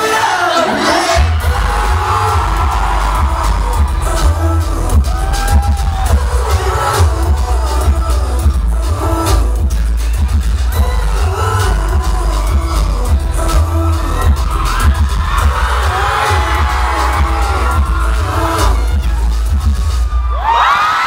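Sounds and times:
crowd screaming and cheering: 0.0 - 21.0
distorted live pop song: 0.0 - 21.0.

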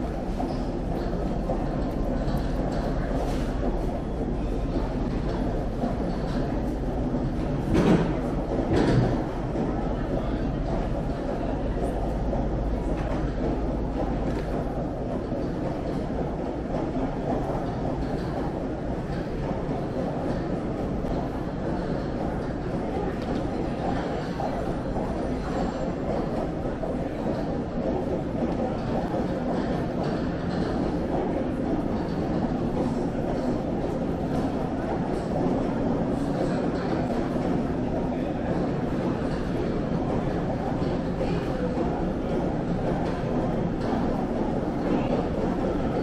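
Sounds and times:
crowd murmur: 0.0 - 46.0
low air handling rumble: 0.0 - 46.0
suitcases rolling on hard floor: 0.0 - 46.0.

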